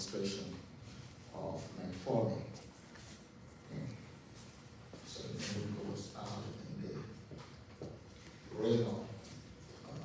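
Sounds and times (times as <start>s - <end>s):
marker strokes on whiteboard: 0.8s - 6.4s.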